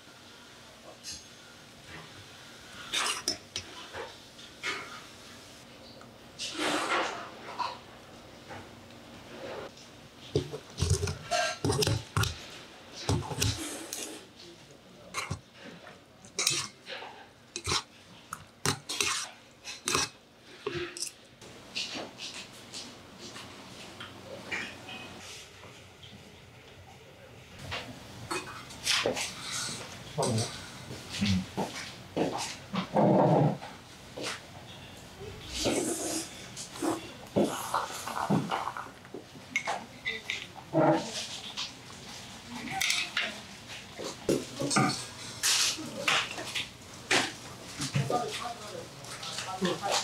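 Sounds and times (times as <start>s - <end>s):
bowls and cutlery clinking: 10.4s - 12.4s, 15.2s - 15.4s, 16.3s - 21.2s.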